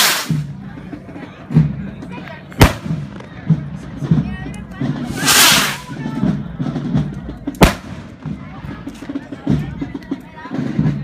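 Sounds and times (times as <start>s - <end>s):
murmuring crowd voices: 0.0s - 11.0s.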